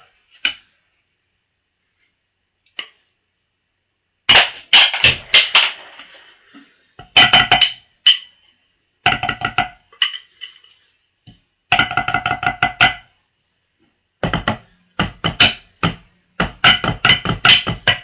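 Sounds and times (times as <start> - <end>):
drumsticks on practice pad: 4.3 - 10.7, 11.3 - 13.2, 14.2 - 18.0.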